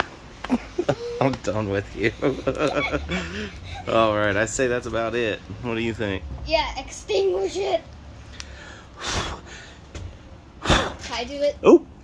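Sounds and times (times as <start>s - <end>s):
low steady rumble: 1.5s - 10.6s
breathy rush of air: 7.4s - 11.0s.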